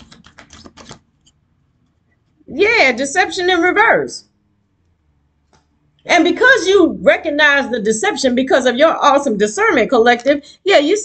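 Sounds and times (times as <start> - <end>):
cards being shuffled: 0.0 - 1.3.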